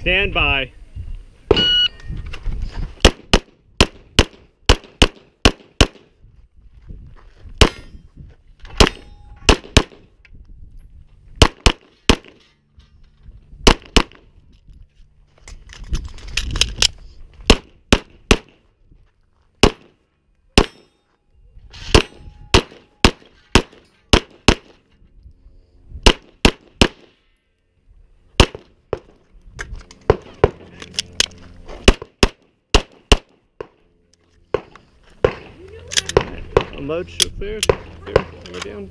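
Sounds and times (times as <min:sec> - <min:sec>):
pistol shots: 0:03.0 - 0:06.1, 0:08.8 - 0:10.1, 0:11.4 - 0:12.4, 0:19.6 - 0:20.0, 0:21.9 - 0:24.8, 0:28.4 - 0:29.1, 0:31.8 - 0:33.8.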